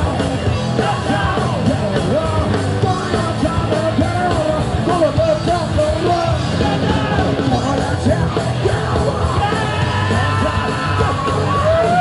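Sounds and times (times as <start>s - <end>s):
man singing: 0.0s - 12.0s
punk band playing live: 0.0s - 12.0s.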